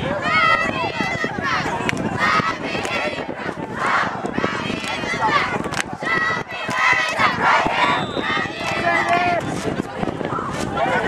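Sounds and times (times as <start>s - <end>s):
spectators shouting: 0.0s - 9.5s.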